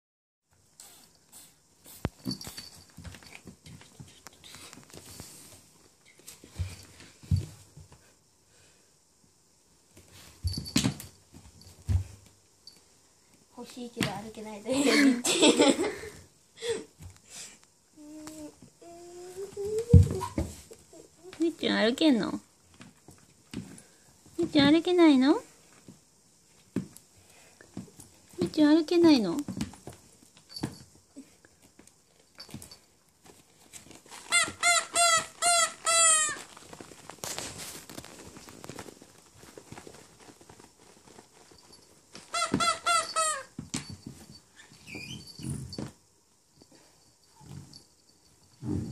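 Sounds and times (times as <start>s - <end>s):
puppy scuffling on wooden floor: 36.0s - 43.0s.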